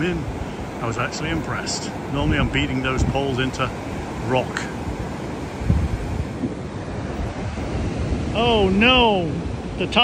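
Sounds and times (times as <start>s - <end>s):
ocean surf breaking: 0.0s - 10.0s
wind rumbling on microphone: 0.0s - 10.0s.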